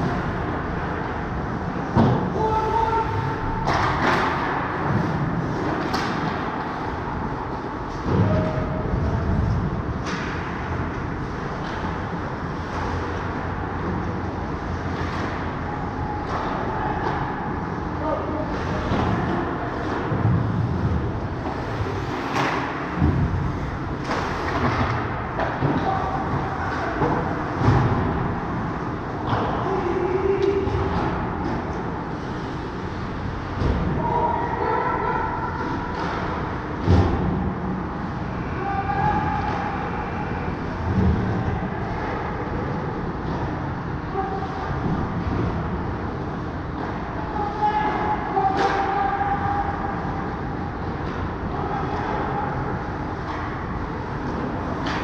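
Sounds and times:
skates and arena hum: 0.0 - 55.0.

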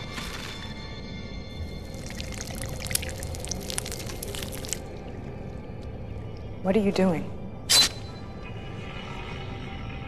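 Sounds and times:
wet squelches and crackles: 1.6 - 6.6.

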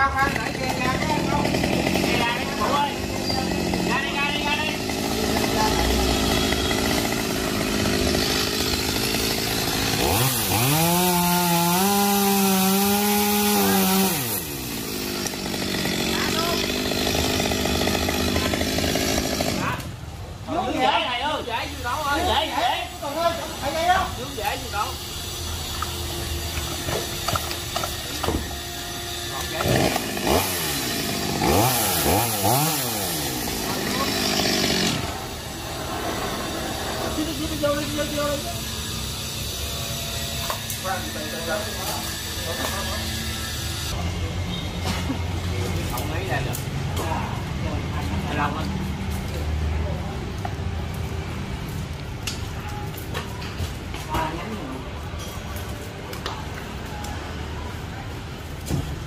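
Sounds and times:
chainsaw cutting branches: 0.0 - 20.0, 25.6 - 35.8.

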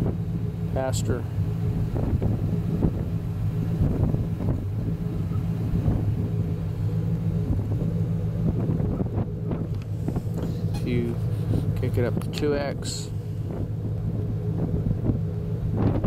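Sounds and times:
engine humming: 0.0 - 16.0
wind noise on microphone: 1.7 - 6.7, 7.3 - 16.0.

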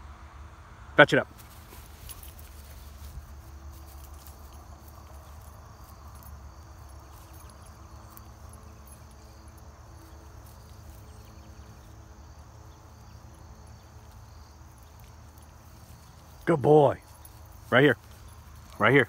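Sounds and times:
insects calling: 1.3 - 19.0.

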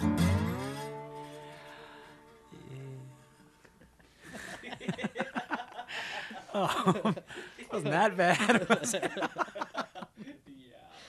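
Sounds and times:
guitar chord ringing: 0.0 - 2.4.

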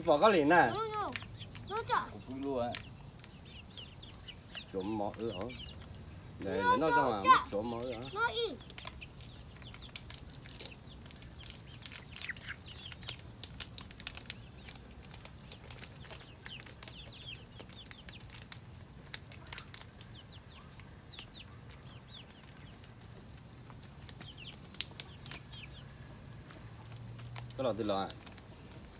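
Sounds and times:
chicks peeping and chirping: 0.0 - 28.9
beaks pecking clicks: 0.8 - 6.5, 7.6 - 25.8.

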